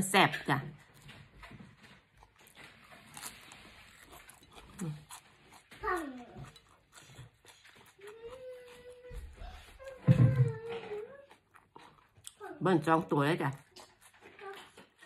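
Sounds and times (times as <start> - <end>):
person chewing with crunching clicks: 0.6 - 12.7, 13.4 - 15.0.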